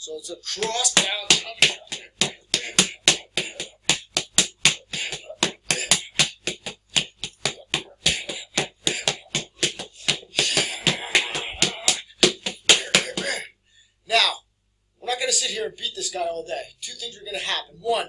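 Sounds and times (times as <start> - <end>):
open-hand chops slapping: 0.6 - 13.4.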